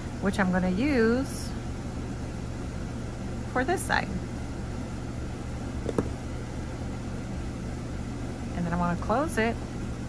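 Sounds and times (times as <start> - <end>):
low background hum: 0.0 - 10.0.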